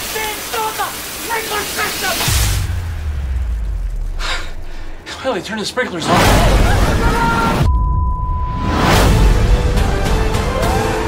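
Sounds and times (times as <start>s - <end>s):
water spraying from burst pipe: 0.0s - 3.1s
deep low bass boom: 2.4s - 5.0s, 6.2s - 9.7s.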